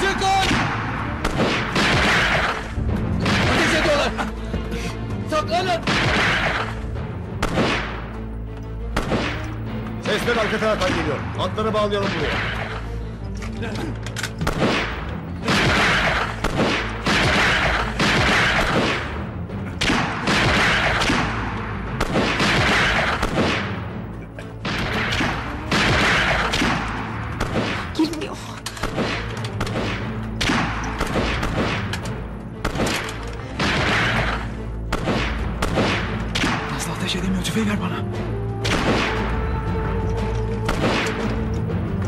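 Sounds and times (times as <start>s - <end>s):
low music score: 0.0s - 42.0s
rifle gunshots: 0.4s - 3.8s, 5.8s - 8.1s, 8.9s - 9.6s, 12.0s - 12.8s, 14.4s - 23.9s, 24.6s - 28.0s, 28.8s - 36.7s, 38.6s - 39.3s, 40.7s - 41.4s.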